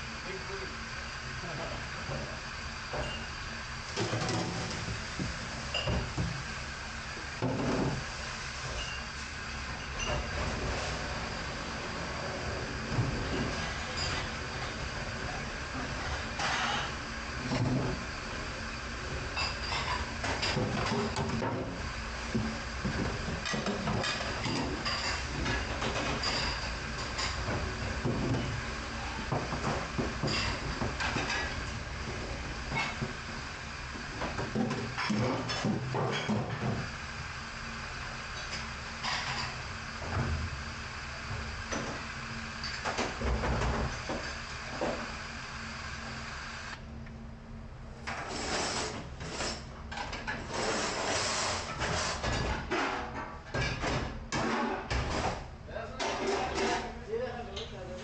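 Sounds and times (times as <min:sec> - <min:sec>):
mechanical hum of kitchen machinery: 0:00.0 - 0:58.0.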